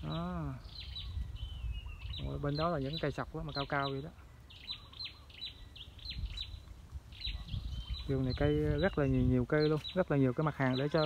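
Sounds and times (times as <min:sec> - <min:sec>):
small birds chirping: 0:00.0 - 0:11.0.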